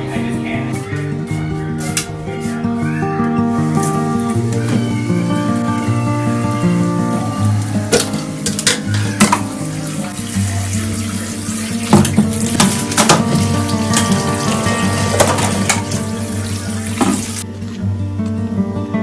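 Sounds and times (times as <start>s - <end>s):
background music with held notes: 0.0s - 19.0s
tap water running into sink: 4.2s - 17.4s
plastic containers clattering: 7.8s - 9.6s, 11.9s - 16.2s.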